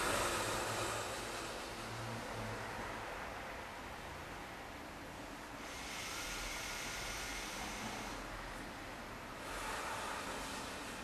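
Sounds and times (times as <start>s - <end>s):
person breathing: 0.0s - 2.6s, 5.6s - 8.6s, 9.3s - 11.0s
background hiss: 0.0s - 11.0s.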